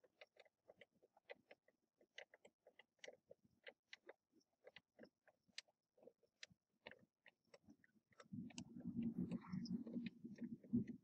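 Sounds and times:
faint ticks and clicks: 0:00.0 - 0:11.0.

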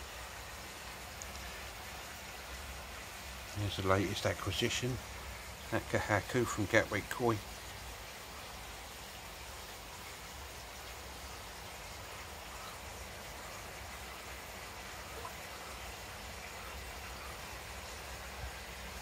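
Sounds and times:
running water in pond: 0:00.0 - 0:19.0.

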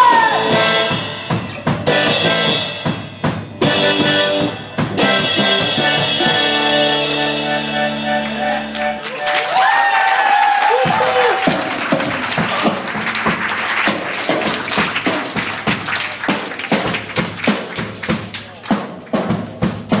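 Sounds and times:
audience clapping and cheering: 0:08.1 - 0:19.7.

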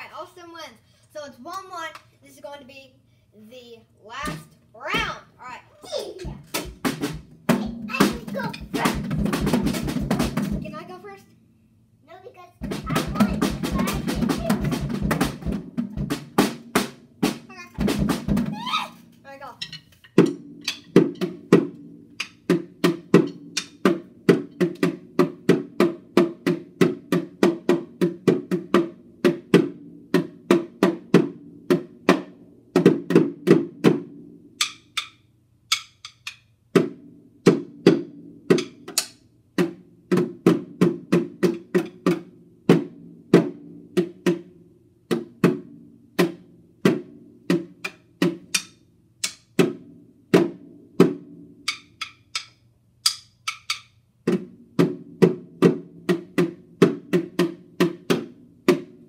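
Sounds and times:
child beating small drum: 0:06.2 - 0:10.7, 0:12.6 - 0:28.7, 0:34.6 - 0:37.0, 0:46.2 - 0:49.8, 0:50.4 - 0:59.0.

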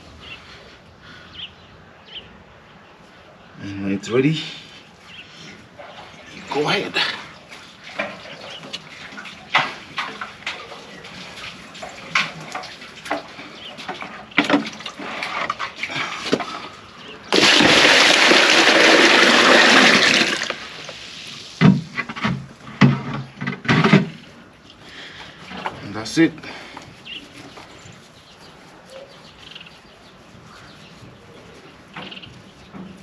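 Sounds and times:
bucket knocks and splashes: 0:08.9 - 0:16.6, 0:17.3 - 0:21.0, 0:21.6 - 0:24.3
water pouring into plastic basin: 0:17.3 - 0:21.7.

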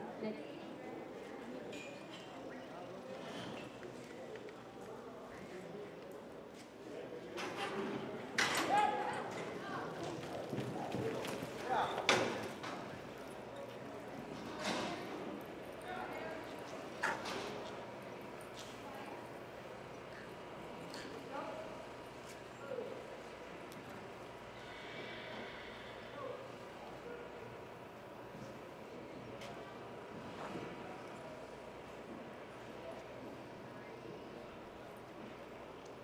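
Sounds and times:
horse hoofbeats in dirt: 0:09.9 - 0:12.6.

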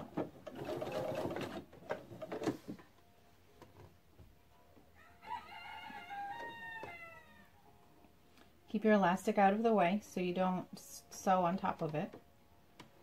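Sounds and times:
distant rooster crowing: 0:05.0 - 0:07.6.

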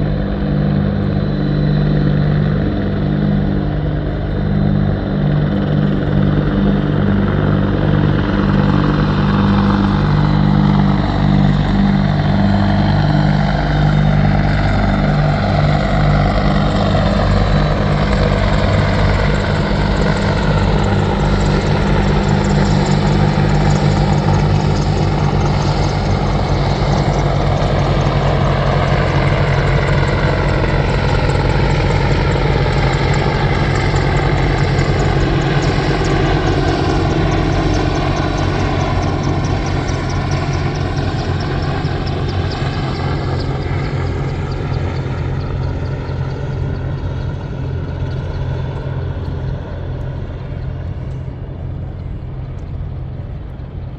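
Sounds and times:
helicopter rotor beat: 0:00.0 - 0:53.9
turbine whine: 0:00.0 - 0:53.9.

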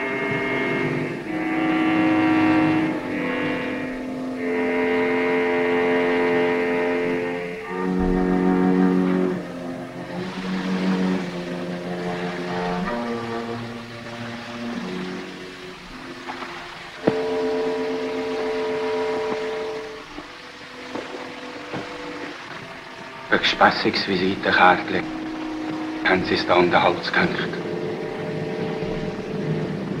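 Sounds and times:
film score held chords: 0:00.0 - 0:30.0
old soundtrack hiss: 0:00.0 - 0:30.0.

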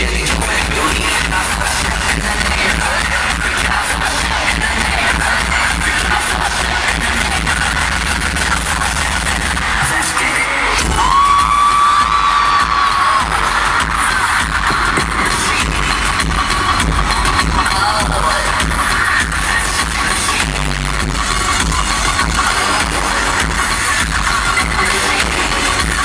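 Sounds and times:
live pop music with heavy bass: 0:00.0 - 0:26.0.

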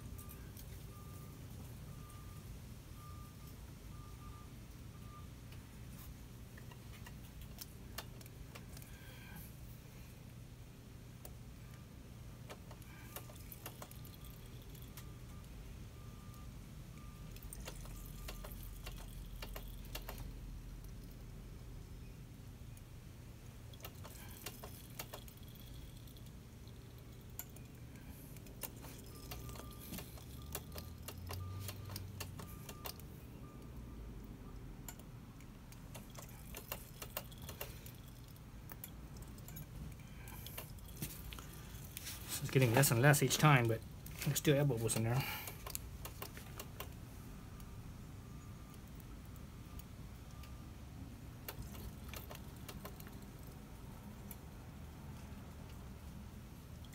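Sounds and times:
low steady hum: 0:00.0 - 0:56.9.

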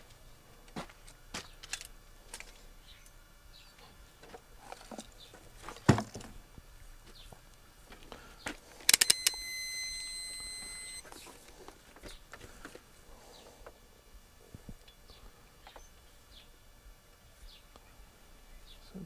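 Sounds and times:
quick clicks: 0:08.8 - 0:11.0
multimeter high-pitched beep: 0:08.9 - 0:11.0.

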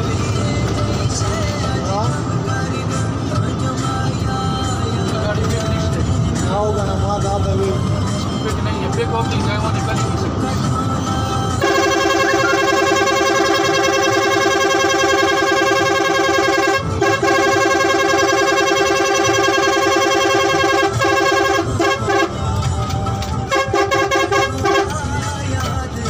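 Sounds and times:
vehicle air horn blasts: 0:11.6 - 0:22.5, 0:23.4 - 0:25.0.

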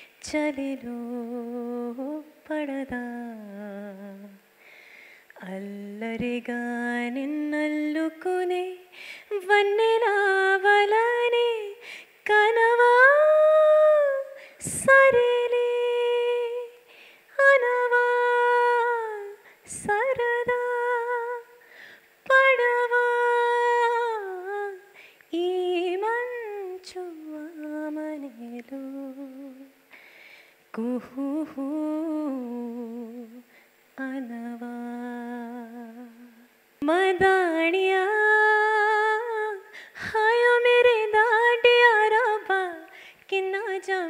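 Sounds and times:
woman singing unaccompanied: 0:00.0 - 0:04.5, 0:05.3 - 0:29.8, 0:30.7 - 0:44.0.

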